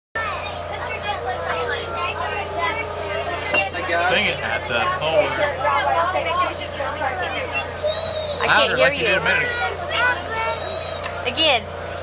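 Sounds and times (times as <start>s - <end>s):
people chatting: 0.2s - 11.7s
steady low hum: 0.6s - 12.0s.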